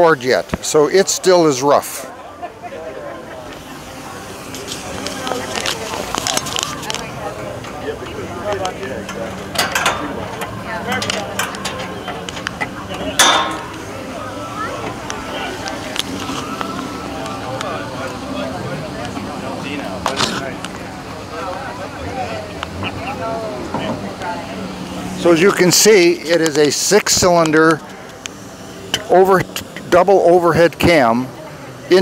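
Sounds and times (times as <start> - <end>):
murmur of crowd voices: 0.0 - 32.0.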